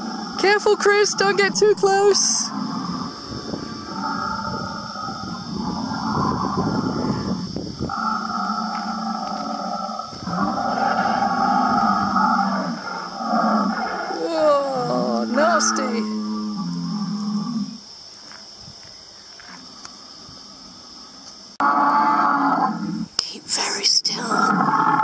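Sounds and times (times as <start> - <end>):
dinosaur roars over loudspeaker: 2.1 - 17.6
low dinosaur growl: 2.1 - 17.8, 24.2 - 25.0.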